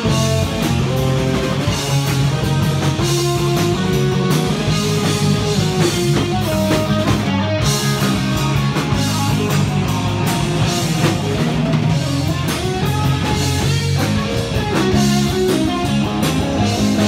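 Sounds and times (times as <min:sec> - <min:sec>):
bass guitar: 0:00.0 - 0:17.0
drum kit: 0:00.0 - 0:17.0
electric guitar: 0:00.0 - 0:17.0.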